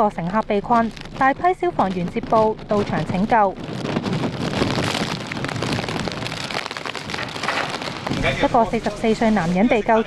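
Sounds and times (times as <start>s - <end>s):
rain: 0.0s - 9.9s
storm wind rushing: 0.9s - 9.6s.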